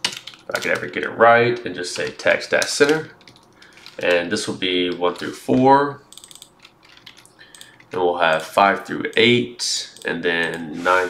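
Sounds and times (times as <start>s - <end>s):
computer keyboard keys clicking: 0.0s - 0.9s, 2.0s - 4.2s, 6.1s - 9.3s.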